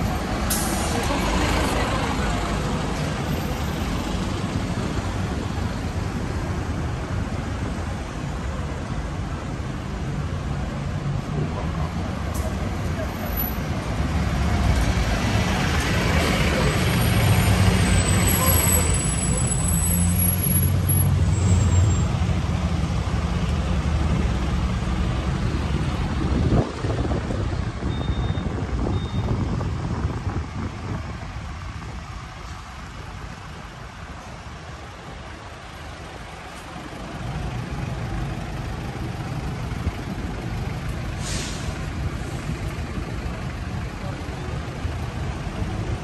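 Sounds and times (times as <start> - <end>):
heavy vehicle engine rumble: 0.0 - 46.0.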